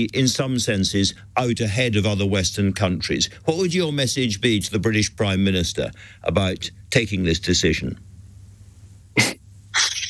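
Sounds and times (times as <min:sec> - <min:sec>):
faint low hum: 0:00.0 - 0:10.0
man breathing sharply: 0:06.0 - 0:06.2.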